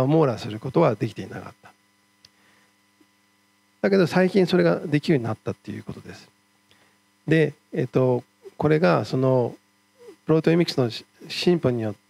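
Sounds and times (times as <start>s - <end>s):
man talking: 0.0s - 1.8s, 3.8s - 6.3s, 7.3s - 9.6s, 10.2s - 12.0s
faint electrical hum: 0.0s - 12.0s.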